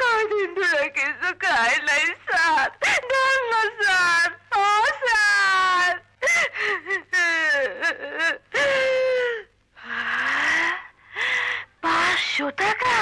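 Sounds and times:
woman crying and pleading: 0.0 - 9.6.

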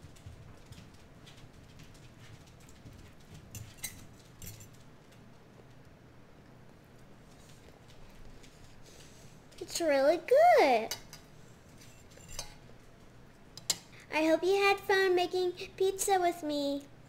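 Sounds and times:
fork clicking against plate: 13.6 - 13.9.

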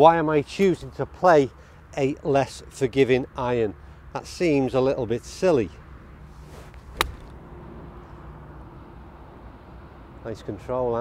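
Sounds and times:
golf club striking ball: 6.6 - 7.4.

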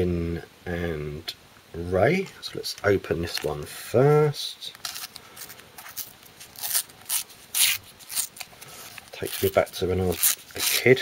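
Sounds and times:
fingers rustling a wrapper: 4.7 - 11.0.

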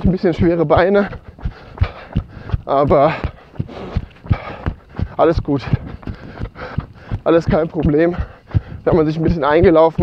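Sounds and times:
running footsteps: 0.0 - 10.0
heavy breathing: 0.4 - 9.3.

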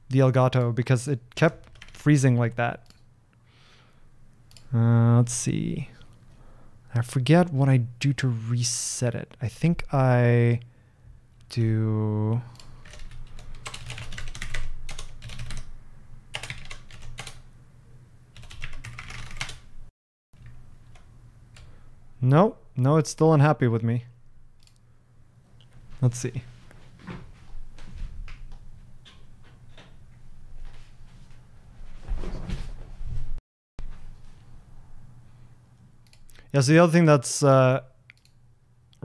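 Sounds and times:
typing on computer keyboard: 1.6 - 2.0, 12.5 - 15.7, 16.4 - 17.4, 18.4 - 19.6.

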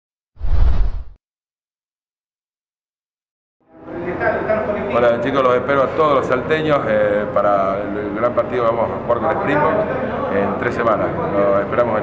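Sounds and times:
bass-heavy whoosh: 0.4 - 1.2.

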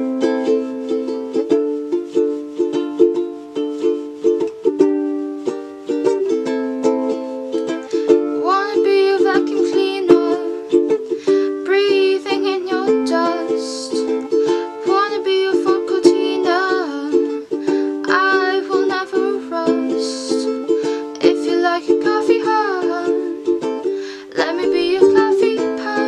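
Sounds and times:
ukulele strumming: 0.0 - 26.0
woman singing: 8.0 - 26.0.

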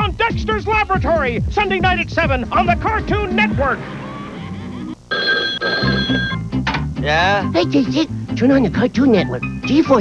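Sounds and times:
background music: 0.0 - 10.0
cartoon telephone ringing: 5.1 - 6.5.

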